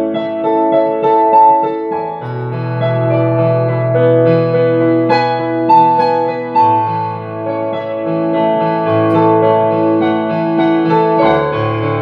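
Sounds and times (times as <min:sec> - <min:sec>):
digital piano chords: 0:00.0 - 0:12.0.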